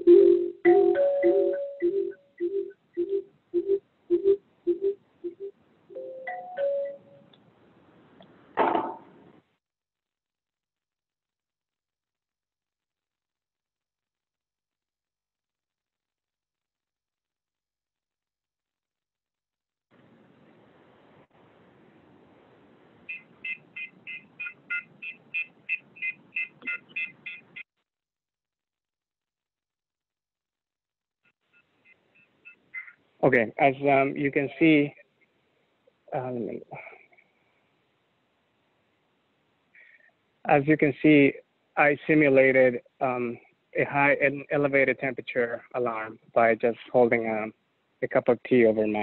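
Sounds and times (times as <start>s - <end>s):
electronic marimba chime: 0.0s - 2.2s, 5.9s - 7.2s.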